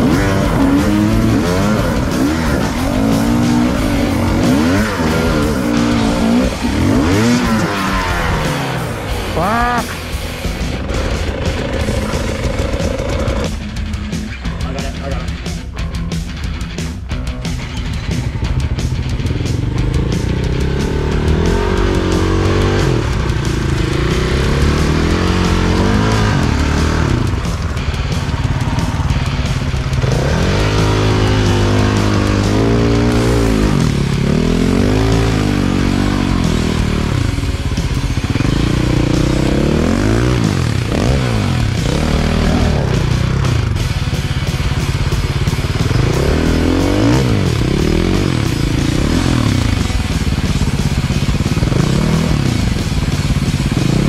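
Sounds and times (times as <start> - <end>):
dirt bike engine revving: 0.0 - 54.0
rock music: 0.0 - 54.0.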